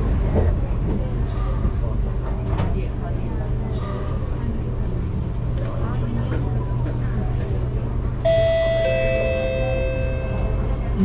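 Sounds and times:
train carriage hum: 0.0s - 11.0s
two-note electronic chime: 8.3s - 11.0s.

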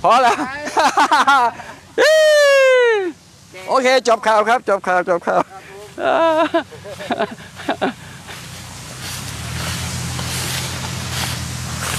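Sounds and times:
engine running with low hum: 0.0s - 11.9s
rushing noise: 6.6s - 11.9s.

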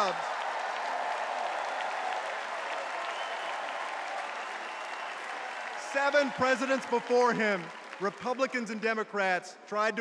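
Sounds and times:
crowd applauding: 0.0s - 9.0s.

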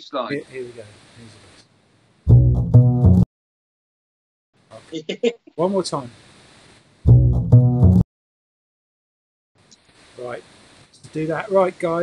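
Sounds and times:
double bass plucked notes: 2.3s - 3.2s, 7.1s - 8.0s.

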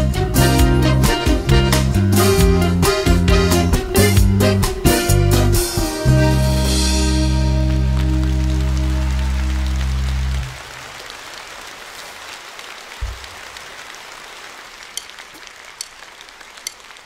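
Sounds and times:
audience applause: 7.2s - 17.0s
low thump: 13.0s - 13.4s.

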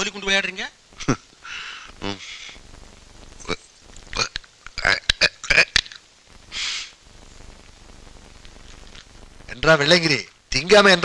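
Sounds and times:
short hiss: 0.9s - 10.5s
mouth clicking and popping: 3.3s - 6.9s.

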